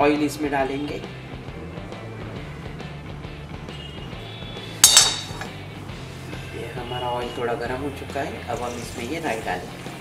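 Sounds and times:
quiet background music: 0:00.0 - 0:10.0
spoon clinking metal pan: 0:04.8 - 0:05.6.

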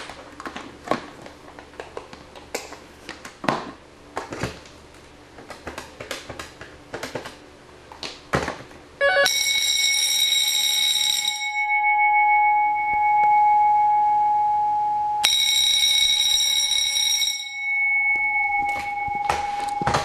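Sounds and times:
electric bells ringing: 0:09.0 - 0:20.0
single steady tone: 0:11.4 - 0:20.0.

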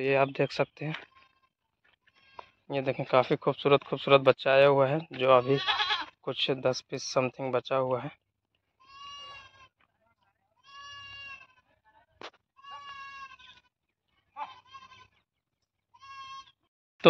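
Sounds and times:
goats bleating: 0:05.4 - 0:06.2, 0:08.8 - 0:09.8, 0:10.6 - 0:11.7, 0:12.6 - 0:13.7, 0:14.4 - 0:15.2, 0:15.9 - 0:16.6.

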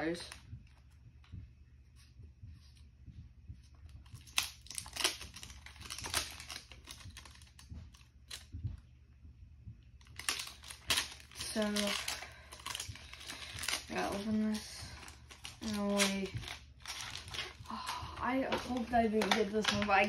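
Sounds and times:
plastic wrapper crinkling: 0:04.0 - 0:08.5, 0:10.0 - 0:20.0.

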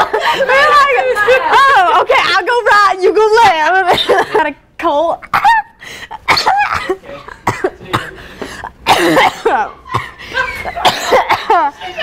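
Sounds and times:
laughter: 0:00.0 - 0:01.8, 0:09.3 - 0:12.0
coughing: 0:03.8 - 0:04.6, 0:05.2 - 0:12.0.

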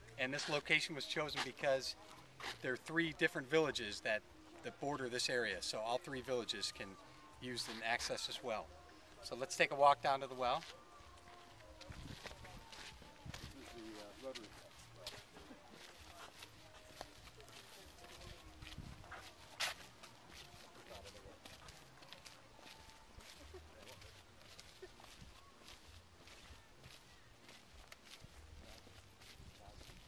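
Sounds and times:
faint voices: 0:00.0 - 0:30.0
footsteps on dirt path: 0:10.3 - 0:30.0.

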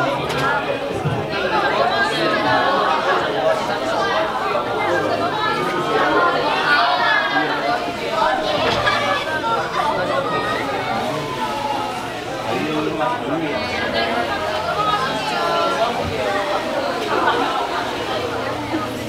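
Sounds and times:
overlapping chatter of voices: 0:00.0 - 0:19.0.

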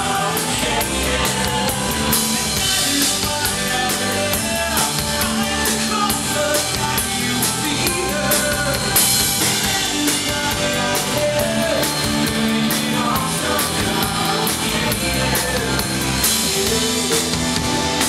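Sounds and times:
man singing into microphone: 0:00.0 - 0:17.4
live rock band: 0:00.0 - 0:18.0.

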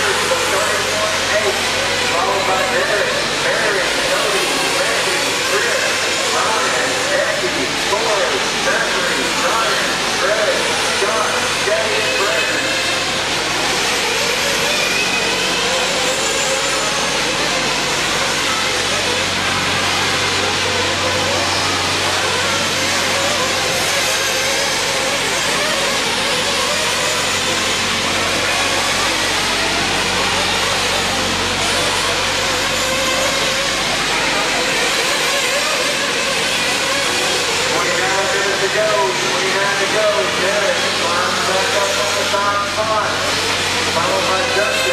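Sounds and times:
rc car engines whining: 0:00.0 - 0:44.9.

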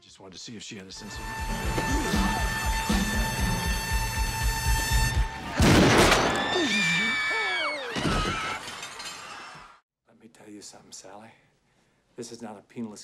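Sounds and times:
tense film score: 0:01.0 - 0:05.8
loud crash: 0:05.5 - 0:06.5.

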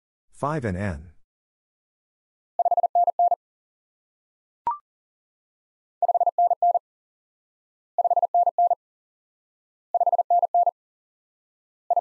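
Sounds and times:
morse code beeps: 0:02.6 - 0:03.4, 0:06.0 - 0:06.8, 0:08.0 - 0:08.8, 0:10.0 - 0:10.7.

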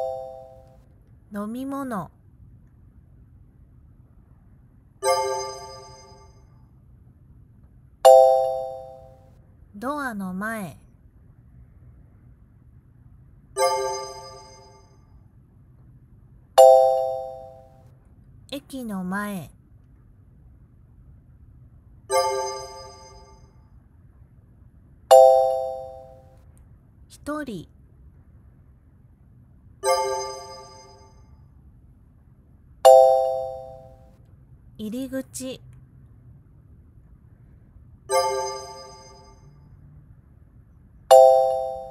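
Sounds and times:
bright chime: 0:00.0 - 0:00.7, 0:05.0 - 0:06.4, 0:08.1 - 0:09.2, 0:16.6 - 0:17.7, 0:25.1 - 0:26.2, 0:32.9 - 0:34.0, 0:41.1 - 0:41.9.

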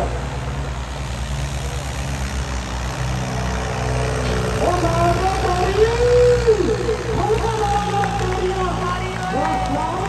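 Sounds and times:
tractor diesel engine under load: 0:00.0 - 0:10.0.

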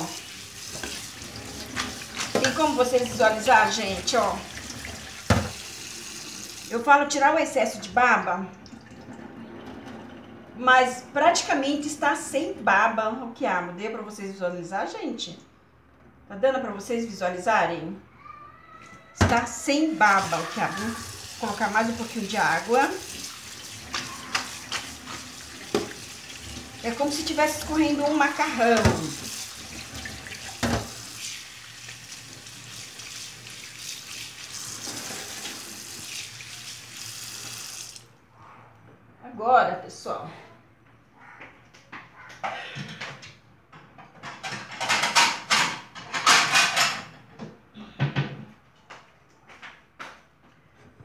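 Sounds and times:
tap running into metal bowl: 0:04.9 - 0:05.7, 0:23.8 - 0:26.1
dog barking: 0:41.2 - 0:41.6.

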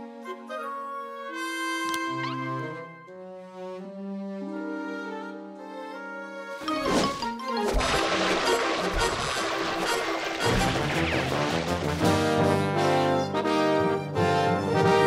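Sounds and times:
orchestral music with brass: 0:00.0 - 0:15.0
slapstick sound effects hits: 0:06.7 - 0:12.5.

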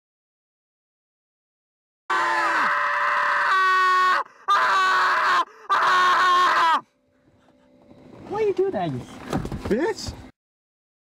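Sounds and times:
person screaming: 0:02.1 - 0:06.8.

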